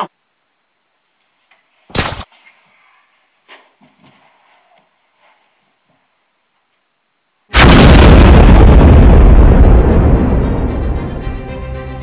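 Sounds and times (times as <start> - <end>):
very loud blast: 7.5 - 11.3.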